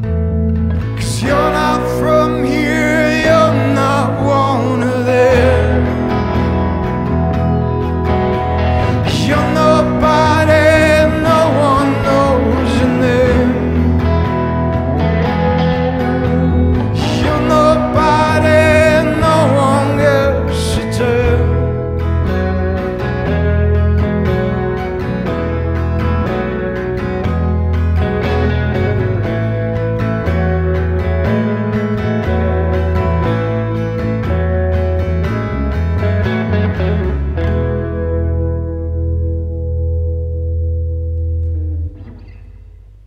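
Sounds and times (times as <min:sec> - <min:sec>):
live band guitars and bass: 0:00.0 - 0:43.0.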